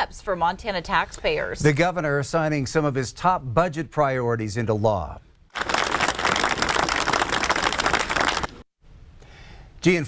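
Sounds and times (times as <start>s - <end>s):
crowd applauding: 5.5s - 8.6s.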